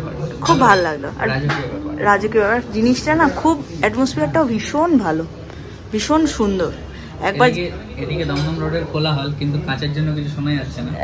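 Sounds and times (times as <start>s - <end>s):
cutlery and dishes clinking: 8.2s - 8.8s.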